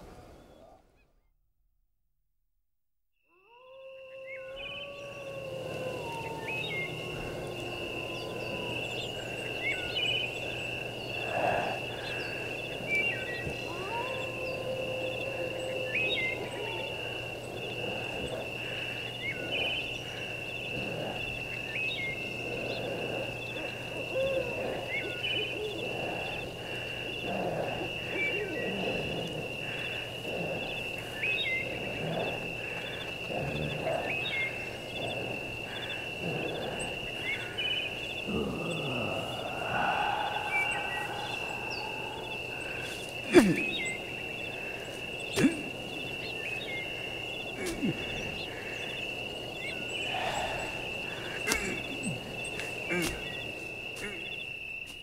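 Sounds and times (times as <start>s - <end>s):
gliding hoot-like calls: 3.3s - 54.5s.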